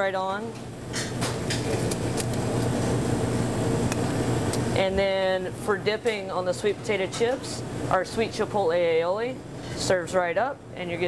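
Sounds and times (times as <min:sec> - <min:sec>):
kitchen machinery humming: 0:00.0 - 0:11.0.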